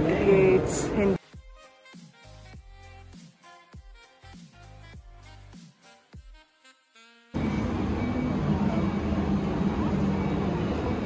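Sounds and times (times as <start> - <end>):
crowd voices: 7.4 - 11.0.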